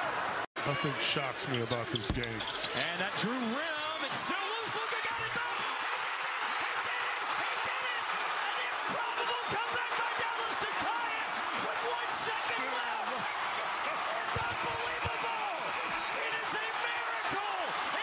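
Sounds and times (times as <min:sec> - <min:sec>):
arena crowd cheering and shouting: 0:00.0 - 0:18.0.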